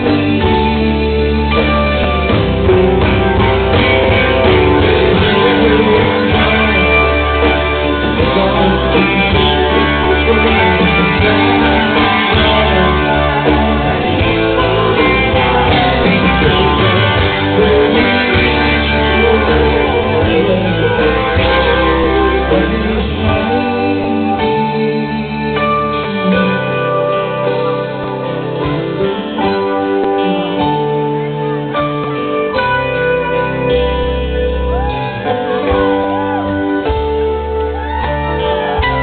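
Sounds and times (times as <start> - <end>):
drums: 0.0 - 39.0
live rock band playing: 0.0 - 39.0
strummed acoustic-electric guitar: 0.0 - 39.0.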